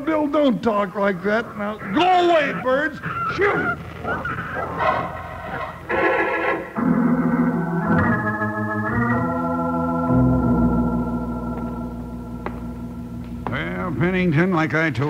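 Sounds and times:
organ chords: 0.0s - 15.0s.

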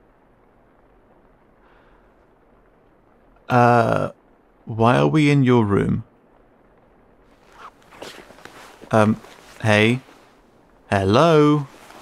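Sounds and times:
cloth rustling and scuffing: 7.3s - 10.5s, 11.6s - 12.0s.

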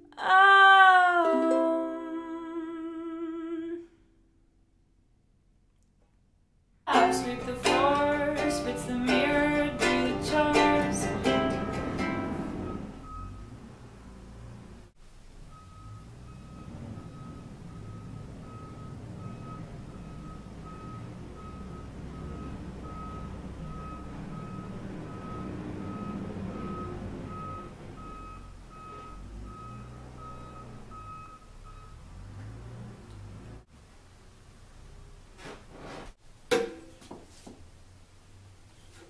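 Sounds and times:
low engine rumble: 6.9s - 35.3s
reversing alarm beeping: 12.2s - 13.6s, 15.5s - 32.2s.

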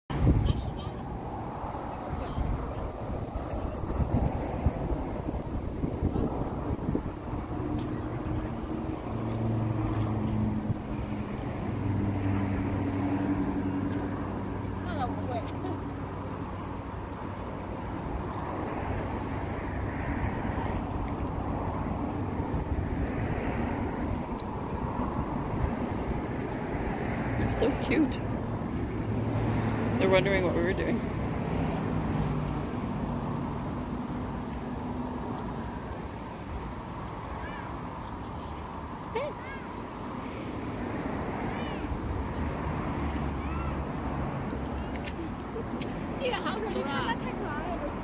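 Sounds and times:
low rumble of traffic or wind: 0.1s - 48.0s
vehicle engine humming: 0.1s - 48.0s.

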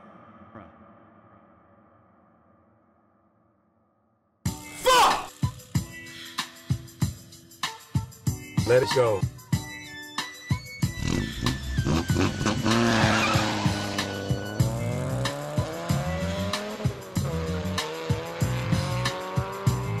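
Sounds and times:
music with steady beat: 4.5s - 20.0s
car engine revving: 10.8s - 20.0s.

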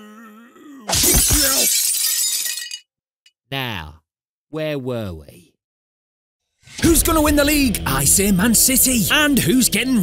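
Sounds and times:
window glass smashing: 0.9s - 2.9s.

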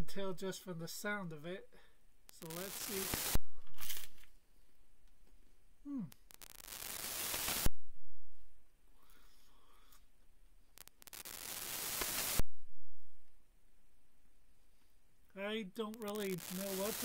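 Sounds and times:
person humming hmm: 5.8s - 6.2s.

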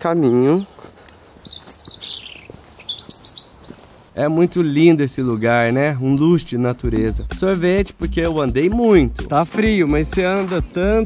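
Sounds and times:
footsteps on leaves: 0.0s - 6.0s
songbirds chirping: 0.0s - 11.0s.

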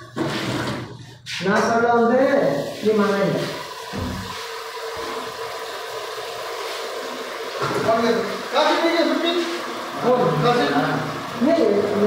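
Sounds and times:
rushing kitchen noise: 0.0s - 12.0s.

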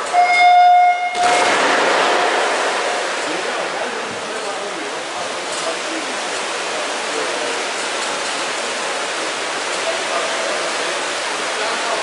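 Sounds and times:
electronic start horn tone: 0.0s - 1.5s
swimmers diving splashes: 1.2s - 5.5s.

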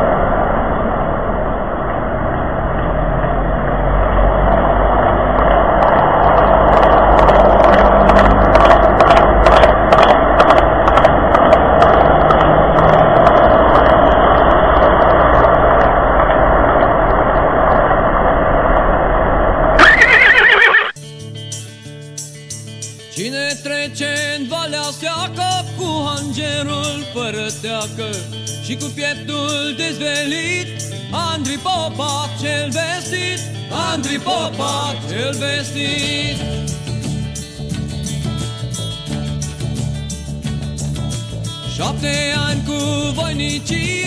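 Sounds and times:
noisy background: 0.0s - 20.8s
horse hooves clip-clopping: 4.5s - 15.9s
horse whinny: 19.8s - 21.0s
music: 21.0s - 44.0s.

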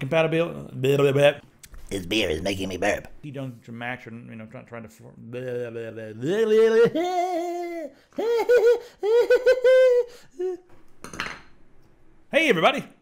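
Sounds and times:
man's high-pitched yelps: 6.1s - 10.6s
man's falsetto vocalizing: 6.5s - 10.7s.

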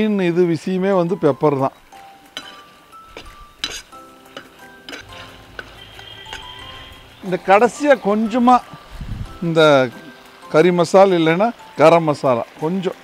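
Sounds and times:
light background music: 0.0s - 13.0s
metal skimmer scraping a pan: 2.3s - 7.8s.

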